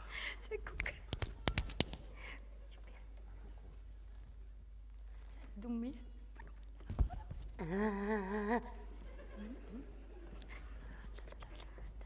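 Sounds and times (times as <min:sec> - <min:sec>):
breathy whisper: 0:10.4 - 0:12.0.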